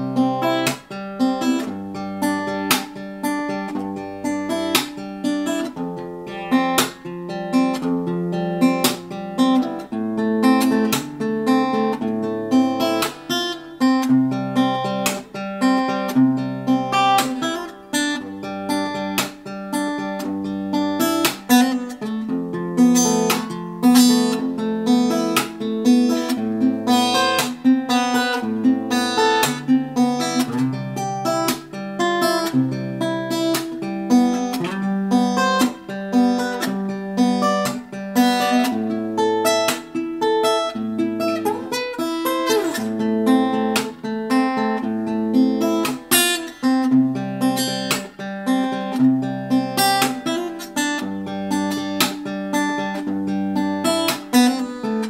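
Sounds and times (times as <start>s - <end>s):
percussive fingerstyle acoustic guitar: 0.0s - 55.0s.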